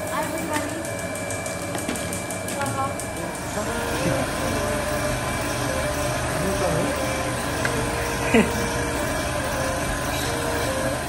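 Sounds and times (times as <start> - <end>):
constant tones: 0.0 - 11.0
steady machine hum: 0.0 - 11.0.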